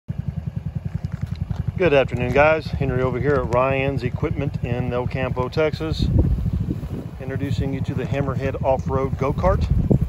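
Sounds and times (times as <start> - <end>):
go-kart engine idling: 0.1 - 10.0.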